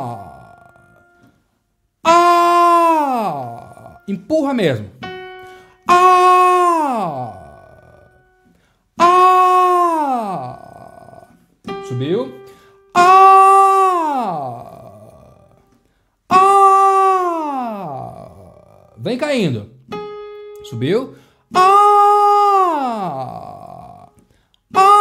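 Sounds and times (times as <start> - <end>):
man singing sliding vowel: 5.9 - 8.1, 9.0 - 11.3, 13.0 - 15.5, 16.3 - 19.0, 21.5 - 25.0.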